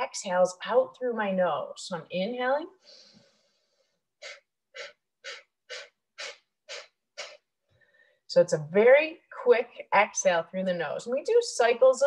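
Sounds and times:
forceful nasal exhales: 2.8 - 8.0.

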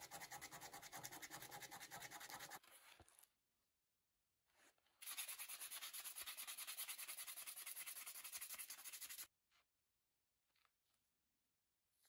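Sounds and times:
sandpaper rubbing strokes: 5.0 - 9.3.

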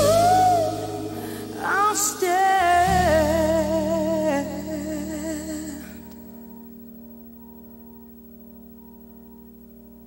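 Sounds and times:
sustained keyboard chords: 0.0 - 10.0.

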